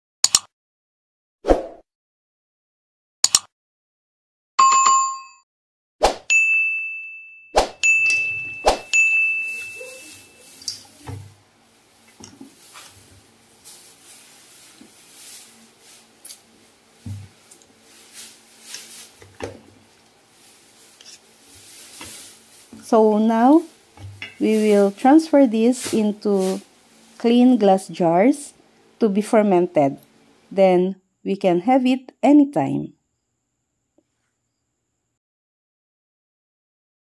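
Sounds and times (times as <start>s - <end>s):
bowl ringing: 6.3s - 11.0s
scraping and rustling in bowl: 8.1s - 27.3s.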